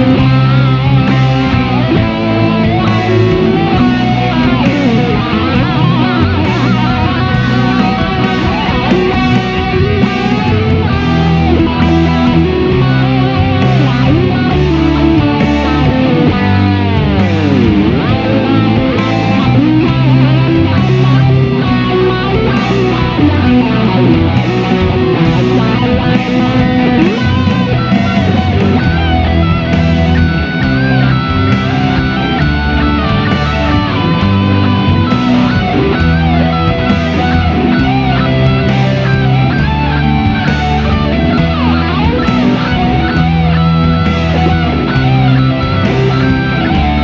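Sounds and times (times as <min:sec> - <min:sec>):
electric guitar lead line: 0:00.0 - 0:47.0
rock backing track: 0:00.0 - 0:47.0.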